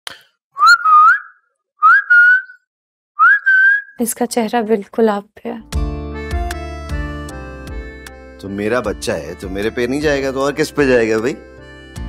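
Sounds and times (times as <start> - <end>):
person whistling: 0.6 - 4.0.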